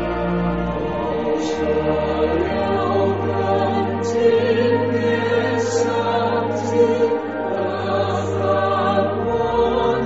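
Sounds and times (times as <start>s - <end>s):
low sustained accompaniment: 0.0s - 10.0s
voices singing with vibrato: 0.0s - 10.0s.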